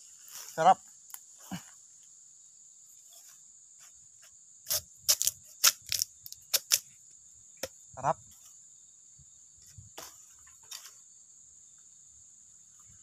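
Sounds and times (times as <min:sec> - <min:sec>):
insect drone: 0:00.0 - 0:13.0
bamboo cracking and snapping: 0:04.7 - 0:06.9.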